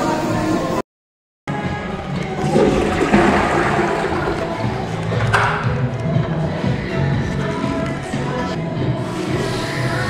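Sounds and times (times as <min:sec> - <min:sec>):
toilet flushing: 0:02.2 - 0:05.8.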